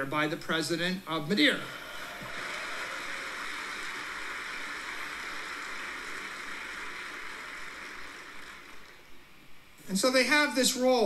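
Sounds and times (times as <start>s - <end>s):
large crowd applauding: 1.7s - 9.3s.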